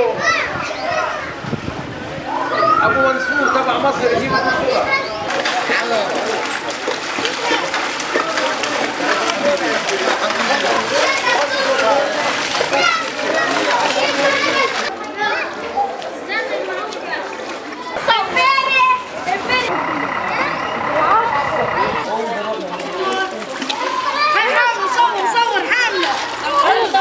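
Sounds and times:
children calling and chattering: 0:00.0 - 0:27.0
children calling out: 0:02.3 - 0:03.7
cart wheels splashing through water: 0:03.7 - 0:27.0.

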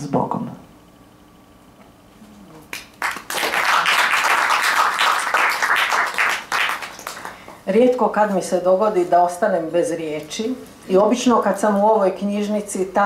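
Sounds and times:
audience applauding: 0:02.7 - 0:07.6.

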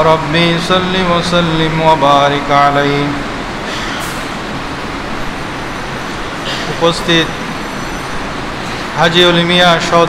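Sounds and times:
background hiss and rumble: 0:00.0 - 0:10.0.

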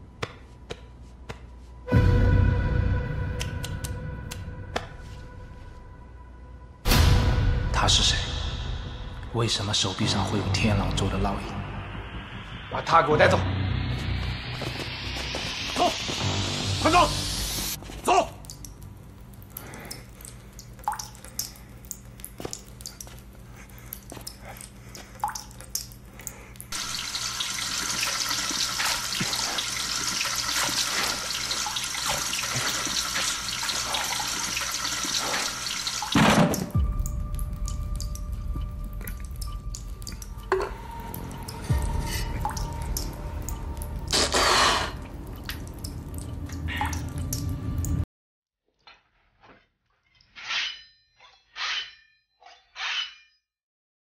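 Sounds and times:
low rumble: 0:04.5 - 0:17.8
water dripping: 0:17.8 - 0:48.0
water pouring and splashing: 0:17.8 - 0:48.0.

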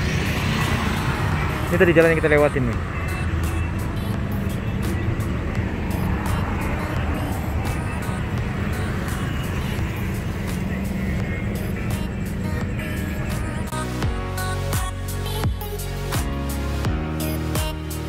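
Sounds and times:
music: 0:00.0 - 0:18.0
street traffic rushing: 0:00.0 - 0:18.0.

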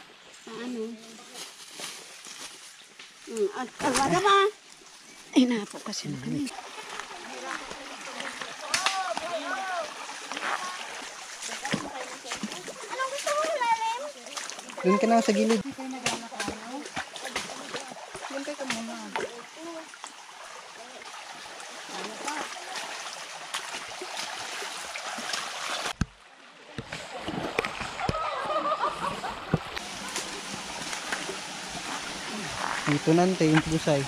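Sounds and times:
running water: 0:00.0 - 0:34.0
feet splashing through stream: 0:01.0 - 0:34.0.

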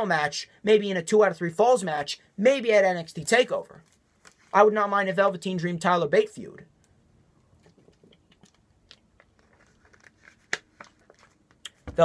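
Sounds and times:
plastic bottle clicking and crinkling: 0:07.6 - 0:12.0.

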